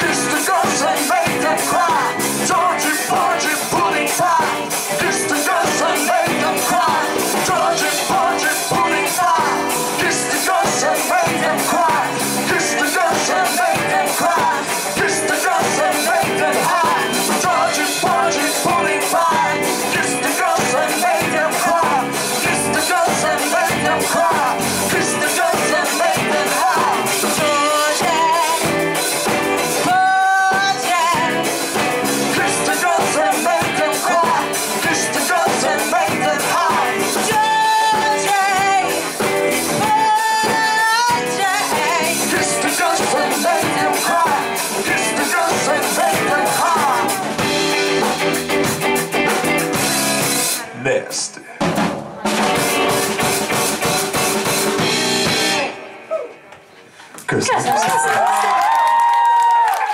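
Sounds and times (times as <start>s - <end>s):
singers singing: 0.0s - 48.7s
electric guitar: 0.0s - 50.8s, 52.1s - 59.9s
keyboard: 0.0s - 58.3s
rock band playing: 0.0s - 59.9s.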